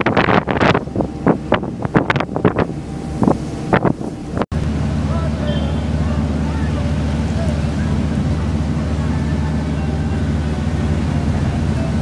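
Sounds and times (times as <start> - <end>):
ferry engine droning: 0.0 - 12.0.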